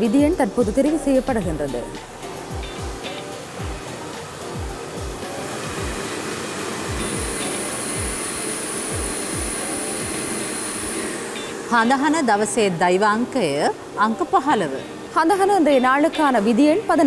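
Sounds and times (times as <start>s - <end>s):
background music with bass thud: 0.1s - 6.1s, 6.8s - 8.2s, 8.9s - 10.2s
high thin whine: 1.2s - 13.6s
blower rushing: 1.5s - 14.0s.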